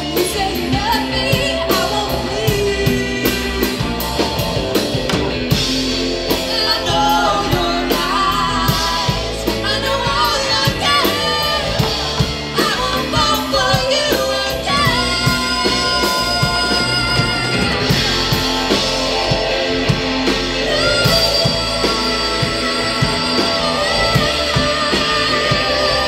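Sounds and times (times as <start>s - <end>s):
woman singing: 0.0s - 4.3s, 6.3s - 18.9s, 20.6s - 26.0s
live rock band playing: 0.0s - 26.0s.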